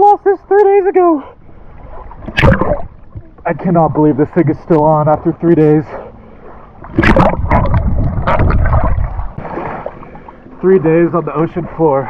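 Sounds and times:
seawater splashing and sloshing: 1.0s - 12.0s
low rumble of water on microphone: 1.4s - 12.0s.

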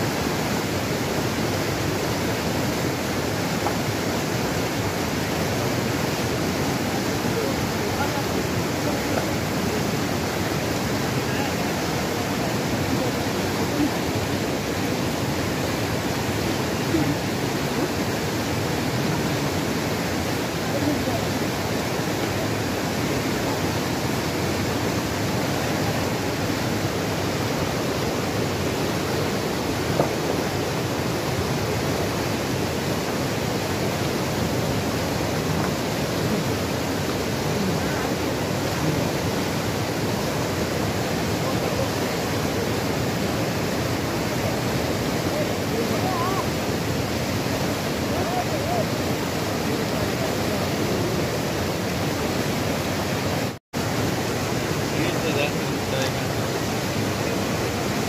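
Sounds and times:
river rushing over rocks: 0.0s - 58.0s.

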